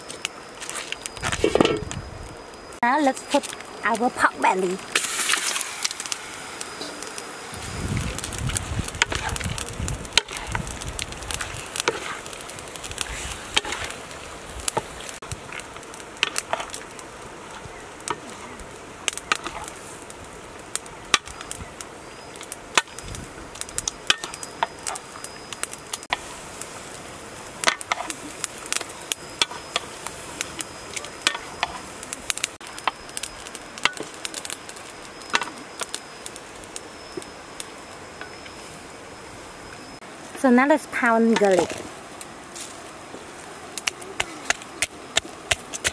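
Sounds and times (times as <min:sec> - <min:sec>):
meat sizzling in a wok: 0:00.0 - 0:45.9
spatula scraping a pan: 0:11.4 - 0:12.3.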